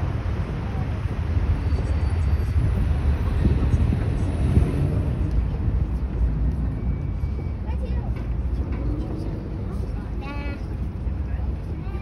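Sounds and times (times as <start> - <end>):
faint chatter of passers-by: 0.0 - 12.0
low crowd rumble: 0.0 - 12.0.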